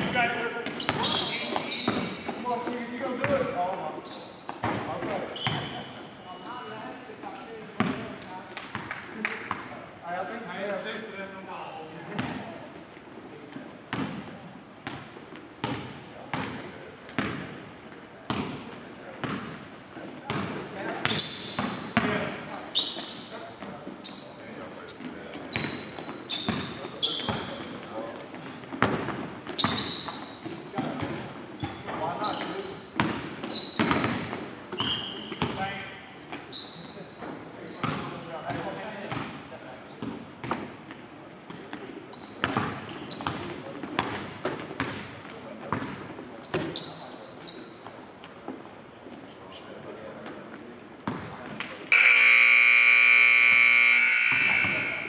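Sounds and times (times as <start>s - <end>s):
sneaker squeaks: 0.0s - 9.8s, 10.5s - 11.0s, 18.3s - 45.1s, 45.7s - 48.6s, 49.4s - 52.4s, 53.0s - 55.0s
basketball bouncing on hardwood floor: 0.6s - 2.4s, 33.0s - 34.4s.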